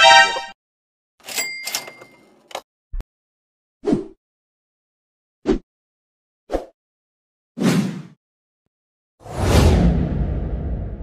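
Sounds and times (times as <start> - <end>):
bell ding: 1.3 - 2.3.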